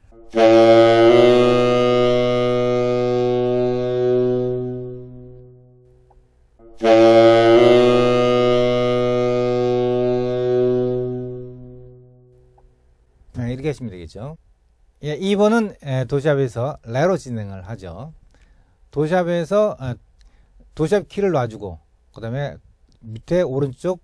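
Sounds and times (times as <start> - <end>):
tenor saxophone notes: 0.0 - 6.0, 6.6 - 12.5.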